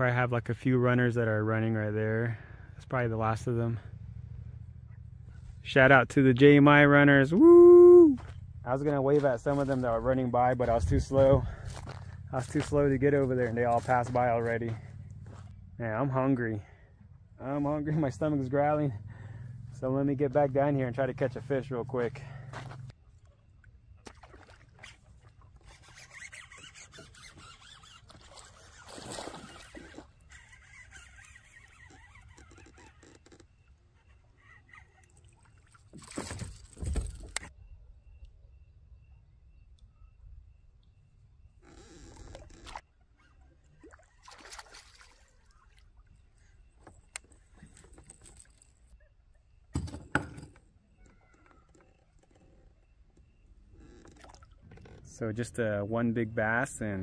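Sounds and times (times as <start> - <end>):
water splashing: 23.9 - 26.2, 27.4 - 30.5, 43.6 - 46.2.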